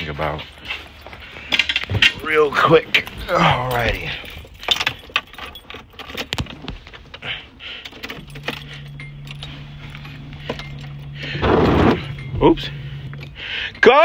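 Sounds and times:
steady low hum: 0.0 - 14.0
keys jangling: 0.2 - 14.0
car engine cranking and starting: 1.0 - 14.0.

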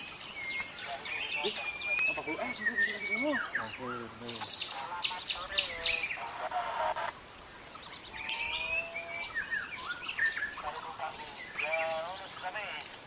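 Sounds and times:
sliding bird calls: 0.0 - 13.0.

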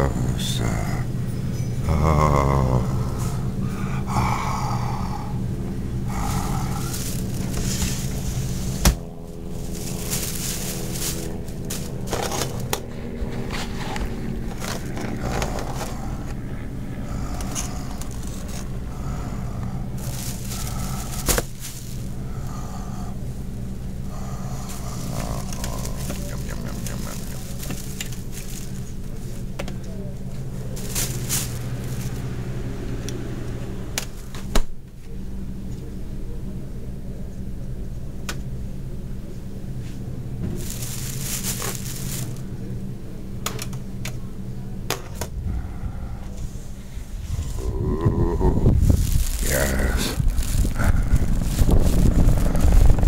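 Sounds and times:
low hum of shop ambience: 0.0 - 53.0.

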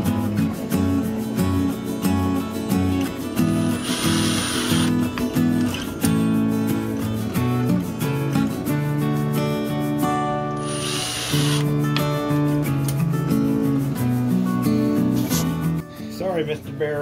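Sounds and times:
acoustic guitar background music: 0.0 - 17.0.

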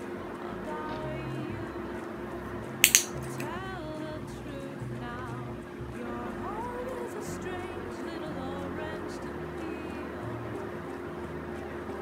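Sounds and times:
background music: 0.0 - 12.0
pet-training clicker snapping: 2.8 - 3.5.

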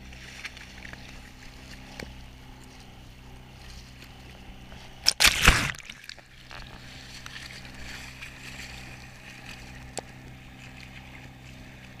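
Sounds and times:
low engine hum: 0.0 - 12.0
hull slapping through waves: 3.5 - 12.0.

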